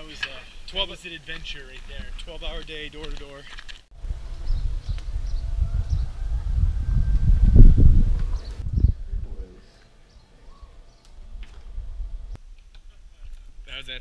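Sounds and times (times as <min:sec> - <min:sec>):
wind buffeting microphone: 0:04.0 - 0:09.6, 0:11.1 - 0:12.4.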